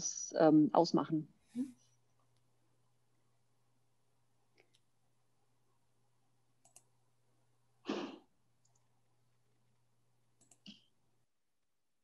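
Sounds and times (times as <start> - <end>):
small clicks: 6.6 - 6.9, 8.6 - 8.9, 10.4 - 10.9.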